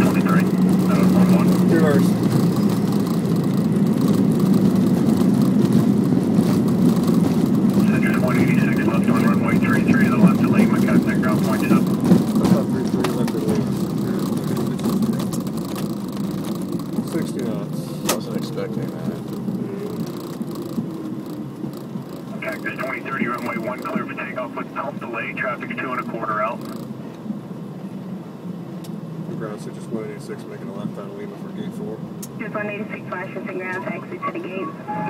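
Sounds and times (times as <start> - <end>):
jet rumbling and rattling on runway: 0.0 - 34.6.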